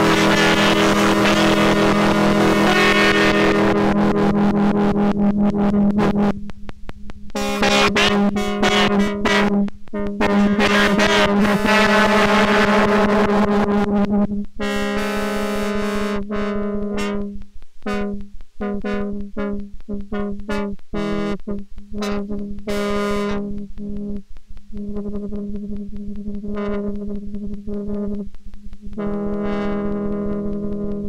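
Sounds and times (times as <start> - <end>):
dense wash of synth tones: 0.0 - 6.6
low synthesizer drone: 0.0 - 31.0.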